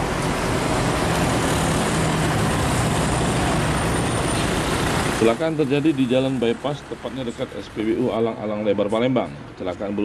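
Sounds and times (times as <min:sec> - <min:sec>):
vehicles passing: 0:00.0 - 0:10.0.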